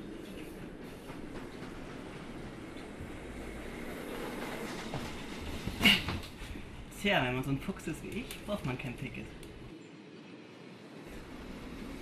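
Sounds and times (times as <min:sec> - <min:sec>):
train wheels rumbling on rails: 0:00.0 - 0:09.7, 0:11.1 - 0:12.0.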